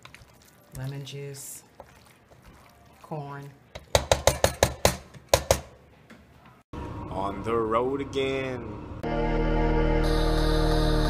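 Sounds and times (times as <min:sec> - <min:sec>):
spatula knocking on frying pan: 0:03.8 - 0:05.7.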